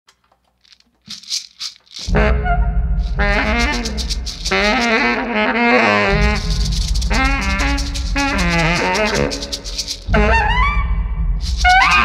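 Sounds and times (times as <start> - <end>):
shaker rattle rhythm: 0.6 - 2.2, 3.0 - 5.4, 6.1 - 10.2, 11.4 - 12.0.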